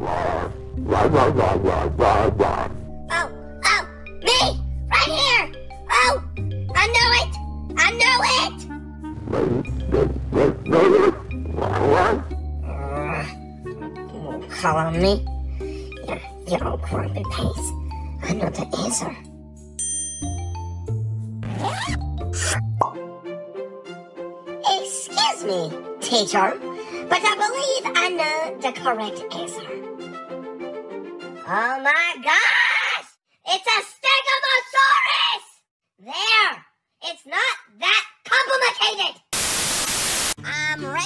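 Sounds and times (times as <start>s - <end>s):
background music: 0.0s - 32.3s, 39.4s - 41.0s
bright high ding: 19.8s - 20.5s
tv static white noise: 39.4s - 40.4s.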